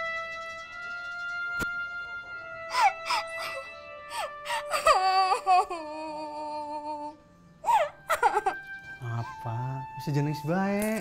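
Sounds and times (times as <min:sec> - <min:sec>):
background music with held notes: 0:00.0 - 0:11.0
woman crying: 0:02.7 - 0:08.6.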